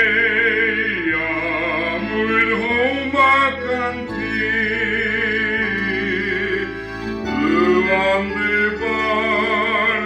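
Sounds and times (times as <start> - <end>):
man singing with vibrato: 0.0 - 10.0
sustained instrumental accompaniment: 0.0 - 10.0.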